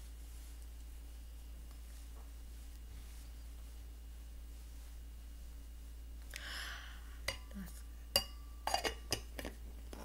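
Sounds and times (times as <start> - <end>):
kitchenware clinking and knocking: 8.1 - 9.6.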